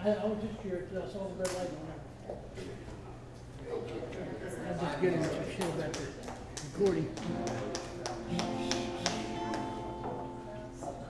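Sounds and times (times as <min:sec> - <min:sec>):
acoustic guitar: 0:07.1 - 0:11.0.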